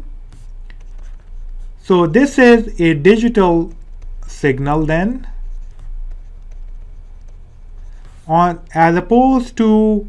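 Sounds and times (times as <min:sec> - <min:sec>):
low electrical hum: 0:00.0 - 0:10.0
stylus scratching on tablet: 0:00.3 - 0:09.7.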